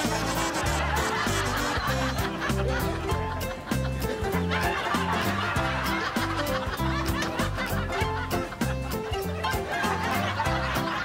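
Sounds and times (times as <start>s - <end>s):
background music with steady beat: 0.0s - 11.0s
canned audience laughter: 0.0s - 11.0s.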